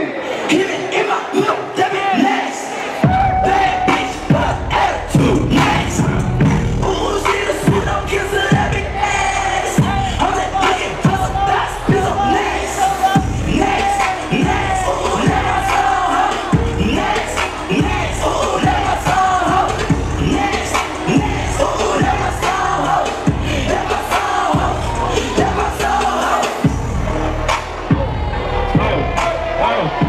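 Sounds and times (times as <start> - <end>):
crowd shouting and cheering: 0.0 - 30.0
hip hop music over pa: 0.0 - 30.0.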